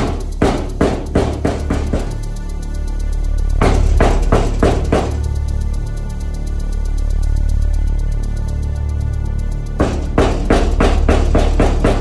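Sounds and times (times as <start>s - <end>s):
fast percussive hits: 0.0s - 7.0s, 9.0s - 12.0s
steady low drone: 0.0s - 12.0s.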